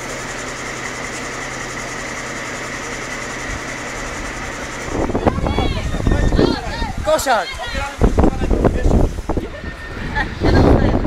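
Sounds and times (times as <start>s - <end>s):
fire engine engine droning: 0.0s - 11.0s.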